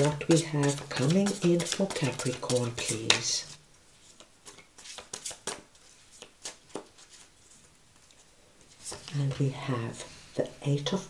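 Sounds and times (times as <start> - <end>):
cards shuffling: 0.0 - 9.4.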